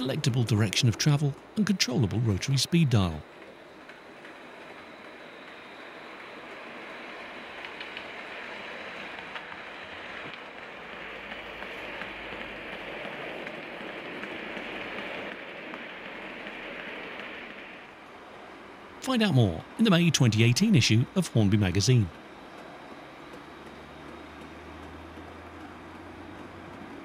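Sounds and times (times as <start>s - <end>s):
model train rumbling on track: 0.0s - 27.0s.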